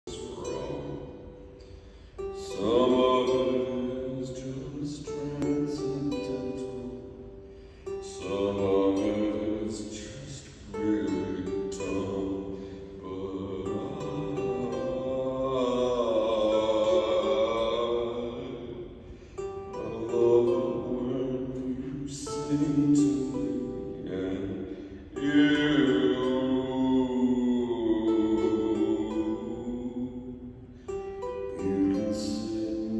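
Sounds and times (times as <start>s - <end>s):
acoustic guitar: 0.0s - 32.9s
mandolin: 0.0s - 32.9s.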